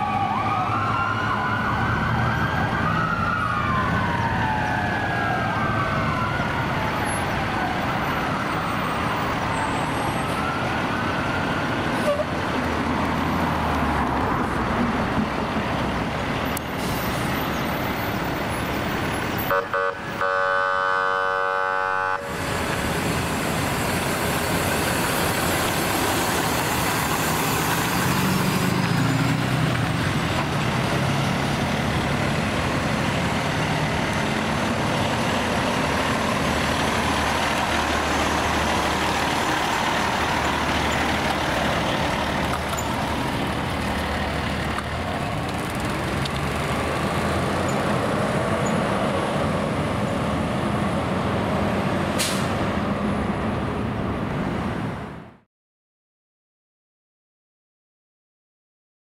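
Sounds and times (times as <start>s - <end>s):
fire truck engines running: 0.0s - 55.4s
road noise: 0.0s - 55.5s
steady horn-like tone: 19.5s - 22.3s.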